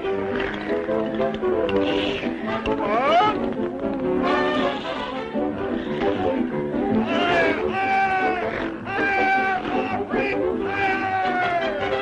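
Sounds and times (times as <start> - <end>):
orchestral cartoon music: 0.0 - 12.0.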